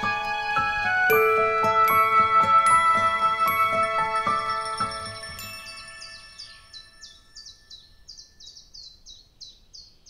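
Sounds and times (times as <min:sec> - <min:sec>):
new-age music: 0:00.0 - 0:08.7
bird chirping rapidly: 0:03.9 - 0:10.0.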